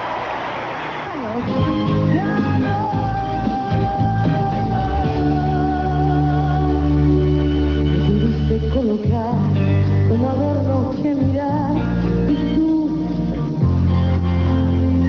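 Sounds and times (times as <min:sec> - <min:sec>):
bass line: 0:01.2 - 0:15.0
held chords: 0:01.4 - 0:15.0
wavering lead melody: 0:01.4 - 0:15.0.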